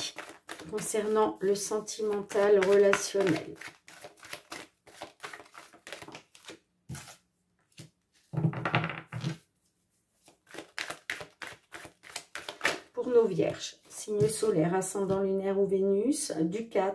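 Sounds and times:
cards being shuffled: 0.0s - 7.9s, 10.2s - 12.9s.

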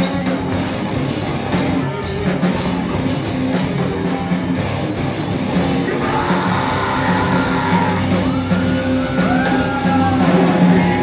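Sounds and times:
drums: 0.0s - 11.0s
guitars: 0.0s - 11.0s
singer shouting and singing: 5.7s - 11.0s.

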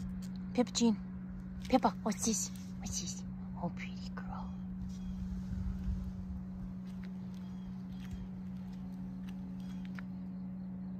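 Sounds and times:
steady low hum: 0.0s - 10.9s
wind buffeting microphone: 4.6s - 10.0s.

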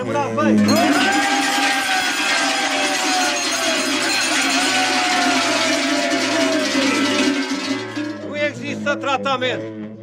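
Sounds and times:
cowbells clanging: 0.6s - 8.8s.

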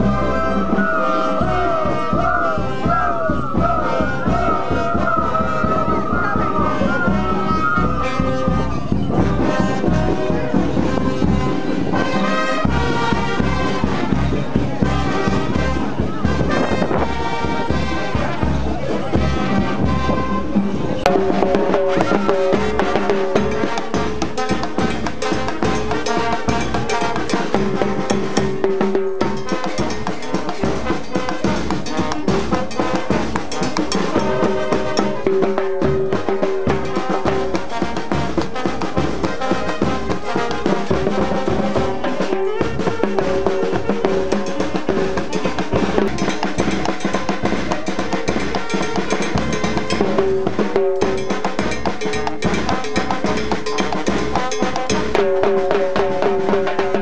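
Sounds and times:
continuous drumming: 0.0s - 57.0s.

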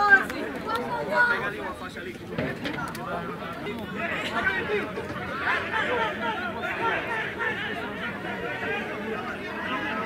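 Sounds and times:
many voices chattering: 0.0s - 10.0s.

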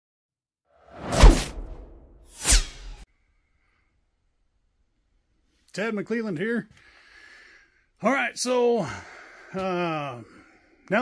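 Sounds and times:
whoosh sweeping down into low thump: 0.9s - 3.0s.

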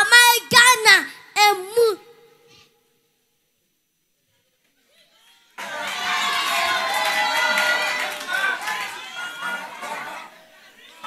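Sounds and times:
audience cheering and shouting: 5.2s - 11.0s.

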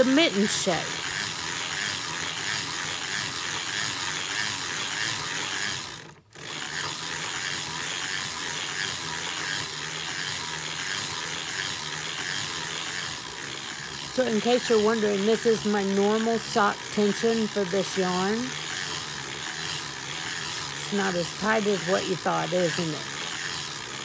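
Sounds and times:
sock machine mechanical clatter: 0.0s - 24.0s.

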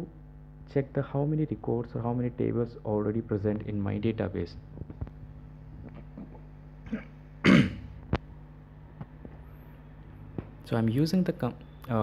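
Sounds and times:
man clearing his throat: 6.0s - 8.0s.

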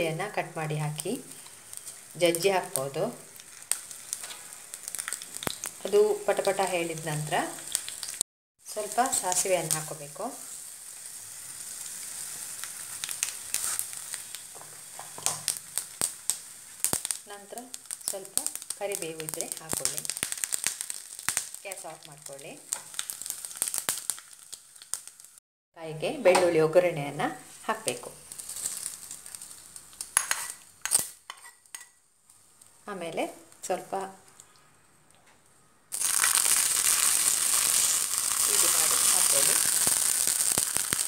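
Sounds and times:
seeds sizzling in hot oil: 0.0s - 25.4s, 26.1s - 34.1s, 35.9s - 41.0s
sharp popping of seeds: 15.1s - 22.1s, 22.7s - 25.4s, 28.2s - 31.8s, 35.9s - 41.0s.

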